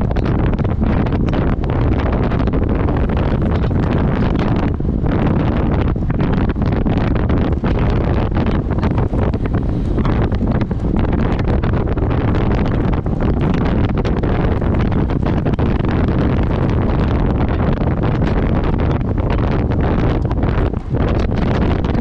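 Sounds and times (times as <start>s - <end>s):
wind buffeting microphone: 0.0s - 22.0s.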